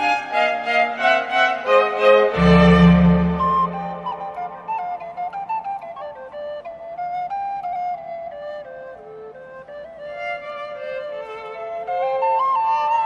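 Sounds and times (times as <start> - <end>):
instrumental melody: 0.0 - 13.0.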